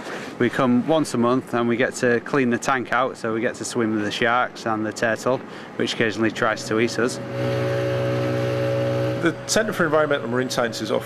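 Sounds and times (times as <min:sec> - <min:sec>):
motorboat engine running: 0:06.4 - 0:11.0.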